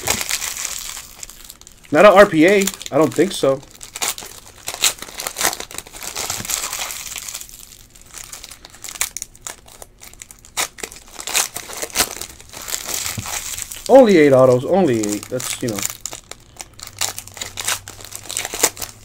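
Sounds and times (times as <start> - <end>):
foil pack tearing and crinkling: 0.0 - 19.0.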